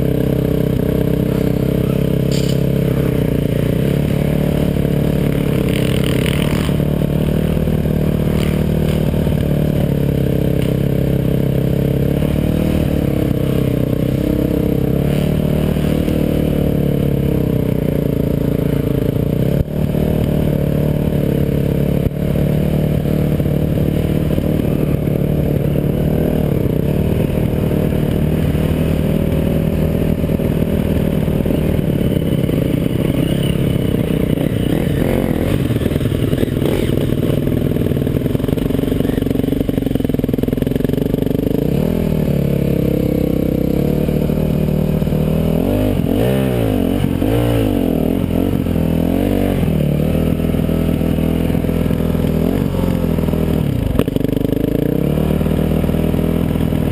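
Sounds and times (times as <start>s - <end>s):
dirt bike engine revving: 0.0s - 56.9s.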